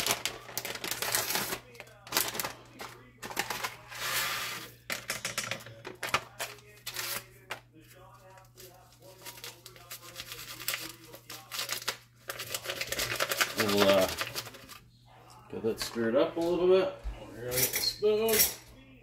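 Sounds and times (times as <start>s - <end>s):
plastic pouch rustling: 0.0s - 4.2s, 8.3s - 14.8s.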